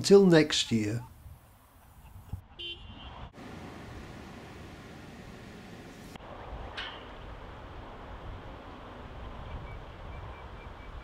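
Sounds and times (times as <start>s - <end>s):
outdoor rumble and hiss: 3.3s - 11.0s.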